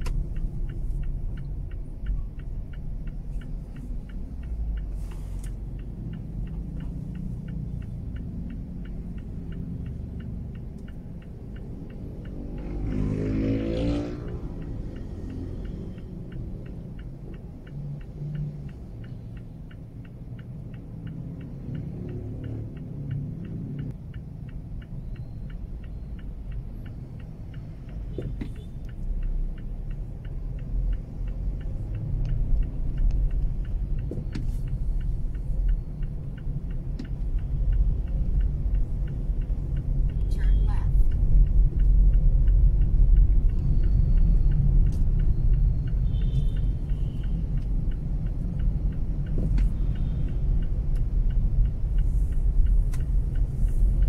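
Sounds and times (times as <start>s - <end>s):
fast even ticking: 0.0s - 28.1s, 28.7s - 54.0s
engine and road rumble: 0.0s - 54.0s.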